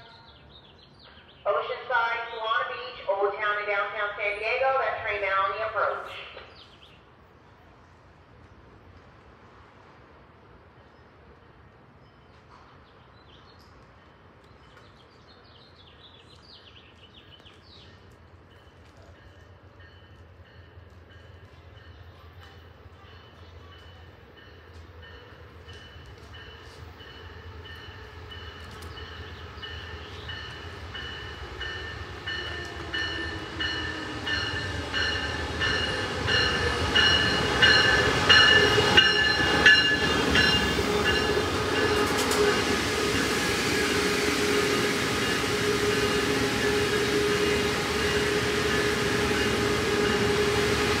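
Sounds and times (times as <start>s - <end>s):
train coaches rumbling by: 0.0s - 51.0s
train bell ringing: 18.5s - 43.4s, 45.1s - 51.0s
locomotive engine hum: 24.0s - 51.0s.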